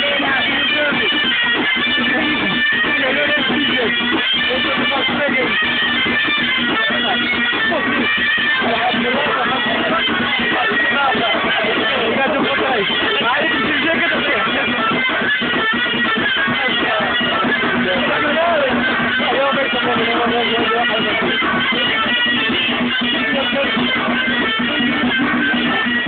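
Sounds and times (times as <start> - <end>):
plucked string instrument: 0.0 - 26.0.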